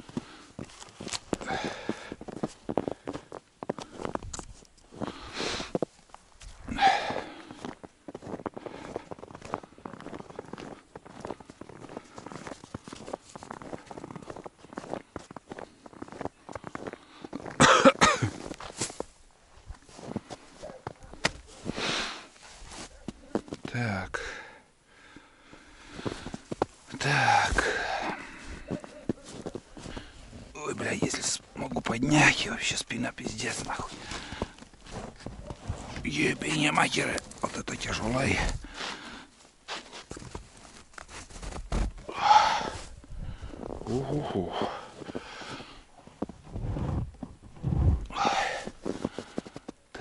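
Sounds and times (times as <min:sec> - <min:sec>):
footsteps crunching in snow: 0:00.0 - 0:23.8, 0:25.5 - 0:49.8.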